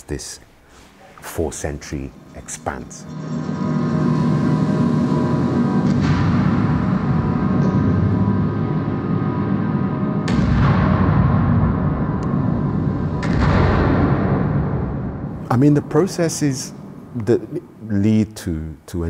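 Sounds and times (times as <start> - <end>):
dense low drone: 1.8 - 18.2
heavy booms: 10.2 - 17.1.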